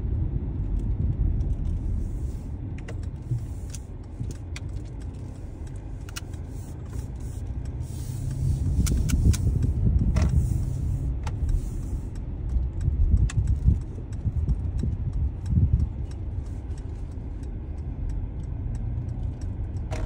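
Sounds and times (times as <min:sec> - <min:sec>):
car rumble from inside: 0:00.0 - 0:20.0
light clicks and rattles: 0:00.6 - 0:20.0.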